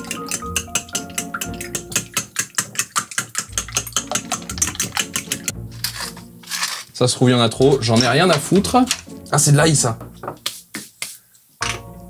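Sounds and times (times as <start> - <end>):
fork beating eggs in bowl: 0.0 - 6.2
background music: 0.0 - 12.0.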